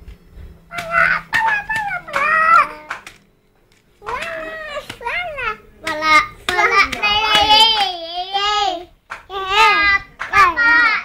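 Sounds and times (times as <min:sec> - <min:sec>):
children's sing-song calls: 0:00.7 - 0:03.3, 0:04.0 - 0:11.0.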